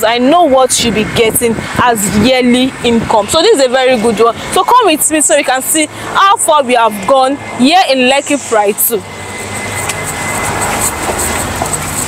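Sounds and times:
passing motor vehicle: 0.0 - 12.0.

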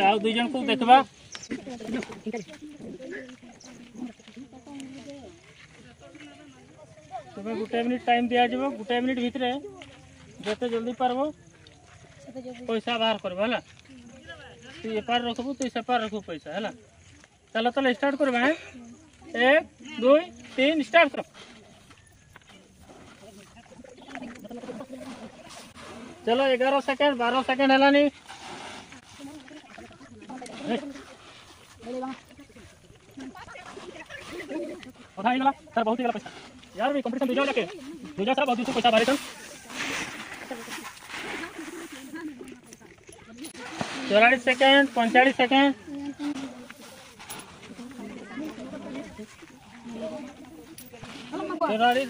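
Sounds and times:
children's chatter: 29.0 - 35.4, 45.8 - 51.8
rice grains rustling: 37.9 - 42.4.

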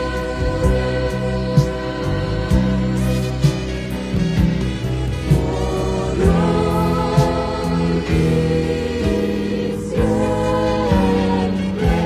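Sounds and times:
band playing worship music: 0.0 - 12.0
choir singing long notes: 0.0 - 12.0.

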